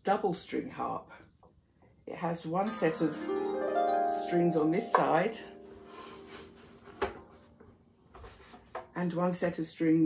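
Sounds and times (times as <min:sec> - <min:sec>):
harp strings ringing faintly: 0:02.7 - 0:07.6.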